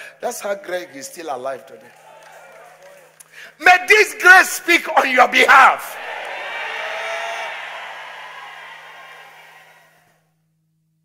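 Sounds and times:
congregation calling out: 0:03.6 - 0:09.2.

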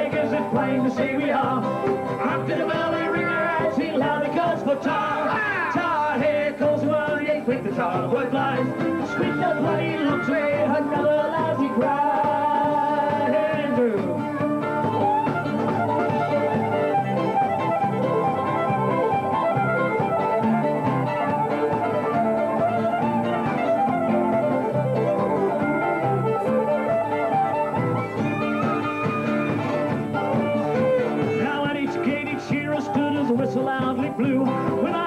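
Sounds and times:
fiddle playing a tune: 0:00.0 - 0:35.0
plucked strings: 0:00.0 - 0:35.0
strummed acoustic guitar: 0:00.0 - 0:35.0.

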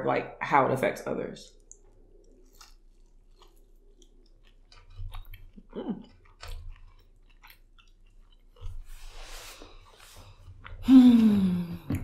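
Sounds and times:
crunchy chewing: 0:01.6 - 0:10.8
person humming: 0:10.8 - 0:12.0.

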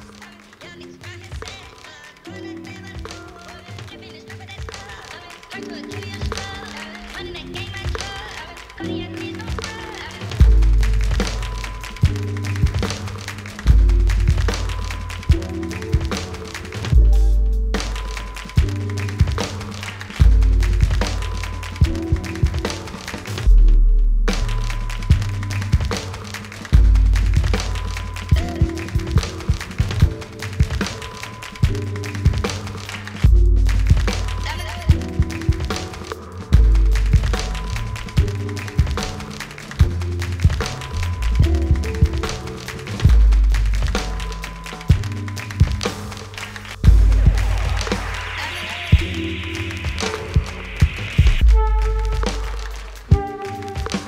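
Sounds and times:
acoustic drum kit: 0:03.0 - 0:54.0
instrumental hip-hop beat: 0:07.4 - 0:54.0
electric bass: 0:13.6 - 0:16.2, 0:26.8 - 0:29.1, 0:33.2 - 0:35.2, 0:46.8 - 0:48.3
sampled sounds: 0:46.5 - 0:54.0.

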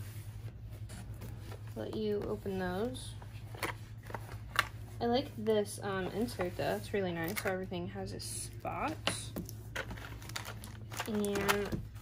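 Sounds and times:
plastic and card crinkling: 0:08.4 - 0:12.0.

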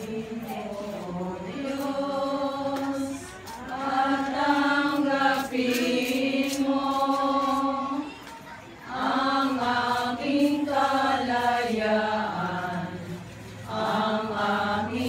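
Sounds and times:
group of voices singing: 0:00.0 - 0:15.0.

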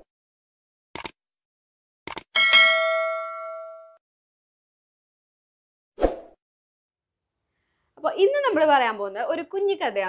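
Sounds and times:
short clicks: 0:01.0 - 0:01.2, 0:02.1 - 0:02.3
bell-like ding: 0:02.4 - 0:04.0.

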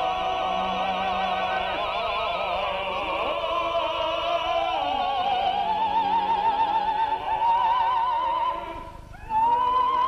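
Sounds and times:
operatic soprano singing: 0:00.0 - 0:10.0.

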